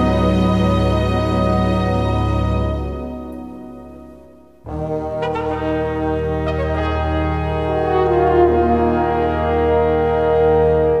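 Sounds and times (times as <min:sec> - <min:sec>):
brass playing held chord: 0:00.0 - 0:11.0.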